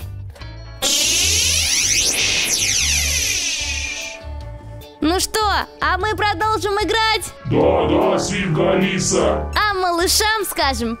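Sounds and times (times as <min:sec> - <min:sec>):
background music with low beat: 0:07.3 - 0:10.2
electronic sweeping sound effect: 0:07.5 - 0:09.6.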